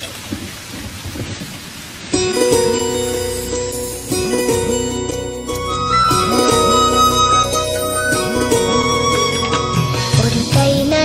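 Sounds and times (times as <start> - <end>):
rain falling steadily: 0.0 - 11.0.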